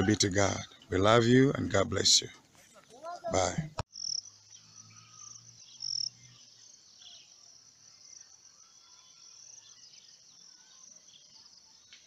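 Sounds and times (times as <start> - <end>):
insects trilling: 3.4 - 12.0
insect chirps: 3.9 - 12.0.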